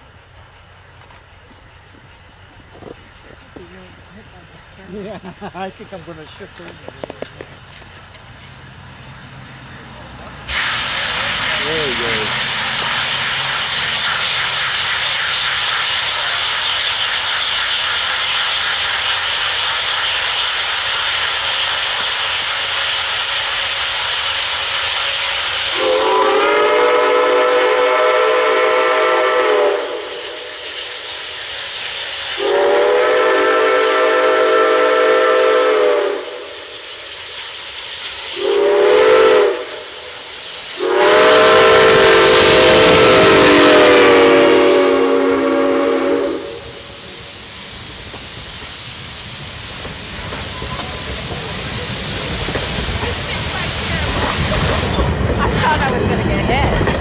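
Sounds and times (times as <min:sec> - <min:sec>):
engine rumble: 0:00.0 - 0:23.6
steam locomotive hissing: 0:00.0 - 0:57.0
steam whistle blasts: 0:25.7 - 0:30.9, 0:32.4 - 0:36.9, 0:38.3 - 0:40.2, 0:40.8 - 0:47.0.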